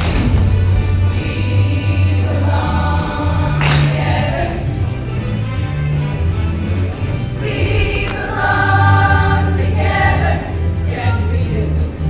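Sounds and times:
deep bass line: 0.0s - 12.0s
choir singing: 0.6s - 11.6s.

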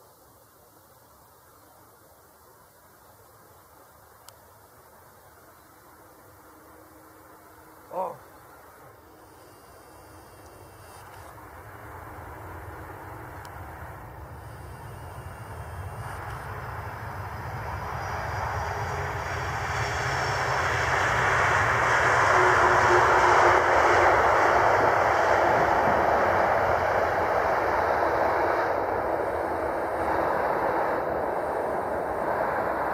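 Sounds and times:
faint engine whine: 0.1s - 32.9s
airliner jet engines roaring: 6.4s - 32.9s.

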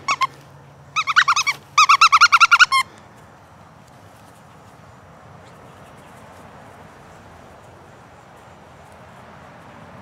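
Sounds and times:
squeaky toy squeaking: 0.0s - 0.4s, 1.0s - 2.9s.

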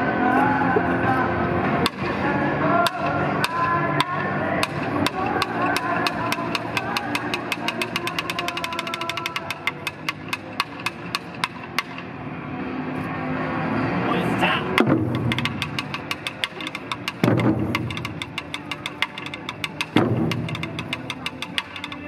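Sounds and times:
drumsticks clicking: 2.9s - 12.1s, 14.8s - 22.0s
dance backing music: 14.8s - 22.0s.

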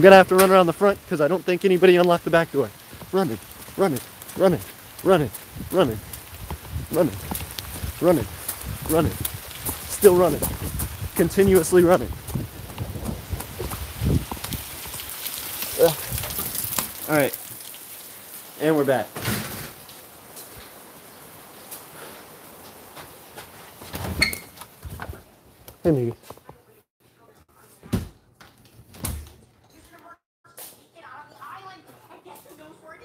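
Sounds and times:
running footsteps: 0.0s - 17.6s
rain: 0.0s - 24.0s
wind noise on microphone: 5.3s - 15.1s, 15.9s - 16.8s.

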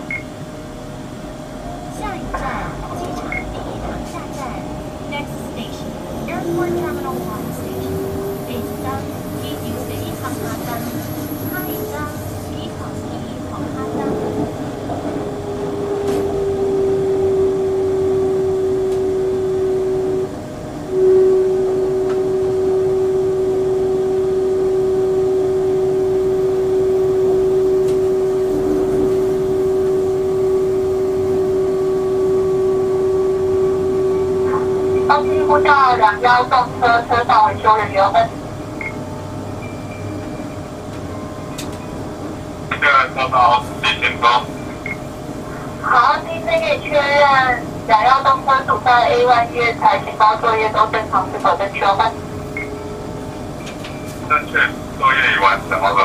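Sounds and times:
electric train drive whining: 0.0s - 56.0s
wheels rumbling on rails: 0.0s - 56.0s.

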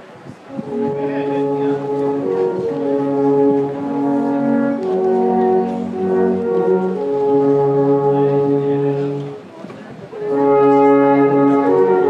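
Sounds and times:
alphorns playing long notes: 0.4s - 9.5s, 10.1s - 12.0s.

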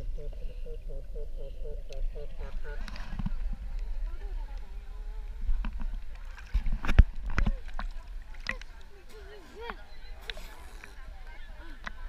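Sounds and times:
distant voices of swimmers: 0.0s - 12.0s
water sloshing and lapping: 2.0s - 12.0s.

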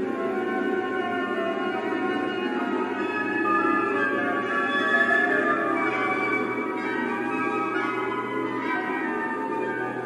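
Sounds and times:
symphony orchestra playing: 0.0s - 10.0s.

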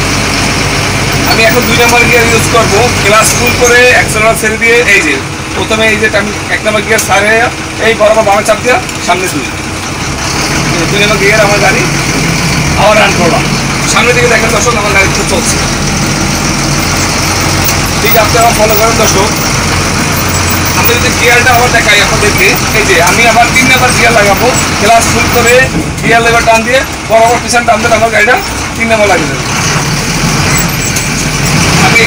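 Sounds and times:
bus engine running: 0.0s - 32.0s
man talking: 1.2s - 9.6s, 10.7s - 12.0s, 12.8s - 15.7s, 18.0s - 19.4s, 20.7s - 29.5s, 31.8s - 32.0s.

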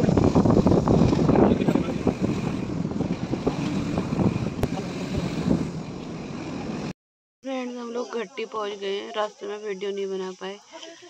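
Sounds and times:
wind rushing over microphone: 0.0s - 6.9s
vehicle rumble on road: 0.0s - 7.0s.

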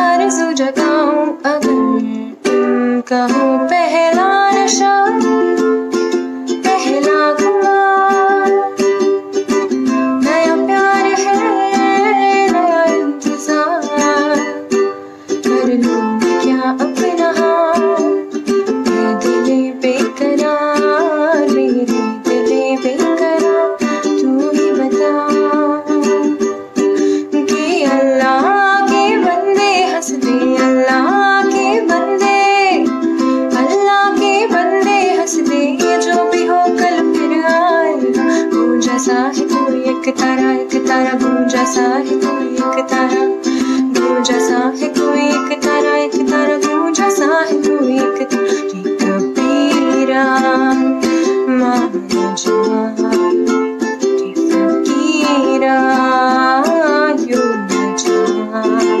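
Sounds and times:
ukulele strumming: 0.0s - 59.0s
woman singing: 0.0s - 59.0s.

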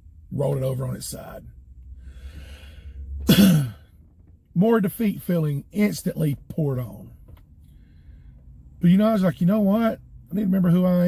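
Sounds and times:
man clearing throat: 3.2s - 3.9s.

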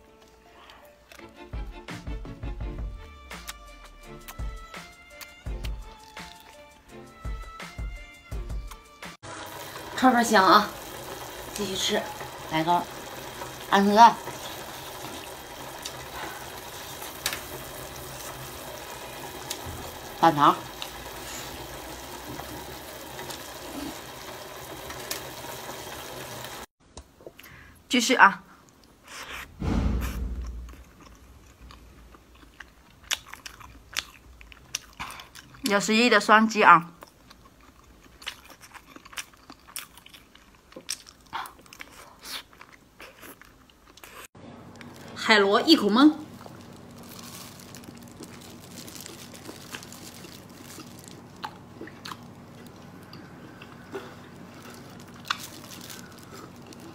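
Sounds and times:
broth boiling with hiss: 9.2s - 26.7s.

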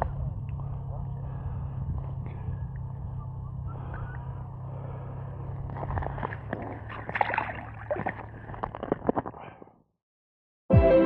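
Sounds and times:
wind rumble on microphone: 0.0s - 9.4s.

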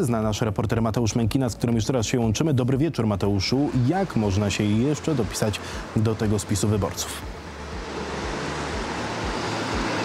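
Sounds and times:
passing car tyre and engine noise: 3.2s - 10.0s.

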